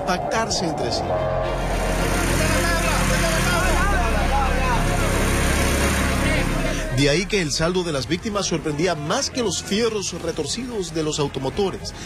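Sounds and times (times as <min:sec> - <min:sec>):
people talking: 0:00.0 - 0:01.1, 0:02.2 - 0:05.2, 0:06.1 - 0:11.9
vehicle engine rumble: 0:00.0 - 0:09.0
road noise: 0:00.0 - 0:12.0.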